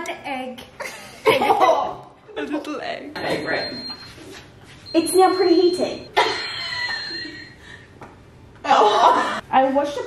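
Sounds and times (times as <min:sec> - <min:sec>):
laughter: 0:00.8 - 0:02.0, 0:06.2 - 0:07.6.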